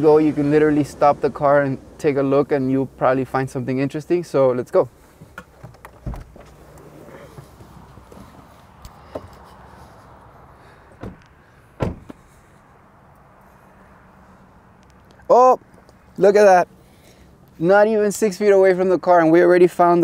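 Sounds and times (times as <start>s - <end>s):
faint outdoor hiss: 0.0s - 20.0s
car door shutting: 5.2s - 9.4s, 10.9s - 12.2s
car door knocks: 11.0s - 11.2s, 11.8s - 12.2s.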